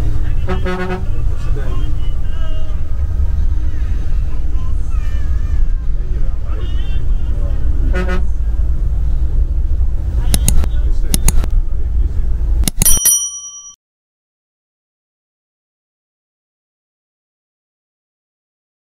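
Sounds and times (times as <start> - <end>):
bus engine and road noise: 0.0 - 13.7
mouse clicks: 10.3 - 11.4
bell-like ding: 12.7 - 13.8.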